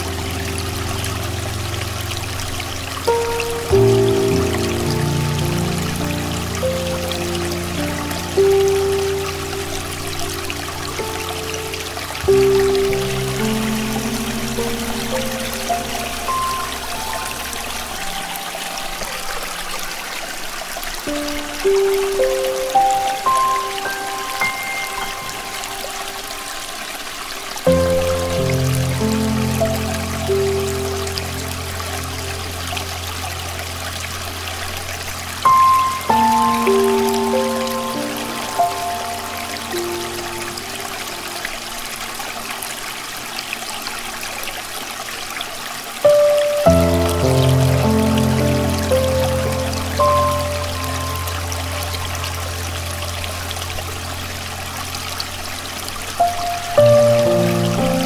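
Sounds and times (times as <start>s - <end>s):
running stream water: 0.0s - 58.0s
slow solo piano: 0.0s - 58.0s.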